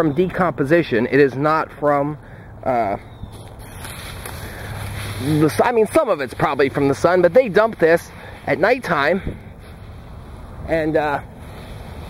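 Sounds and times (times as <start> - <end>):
wind rushing over microphone: 9.1 - 12.0.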